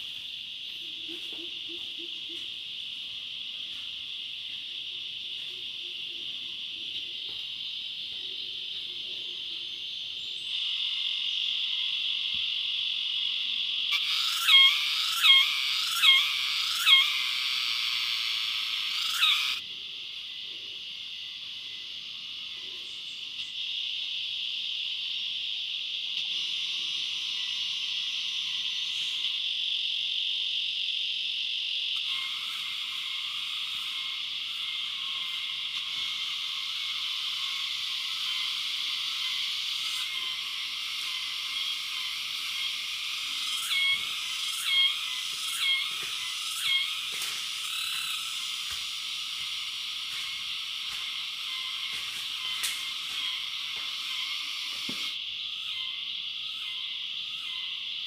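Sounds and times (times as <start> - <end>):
insect chorus: 0.0 - 58.0
frog croaking: 10.4 - 19.6, 23.6 - 58.0.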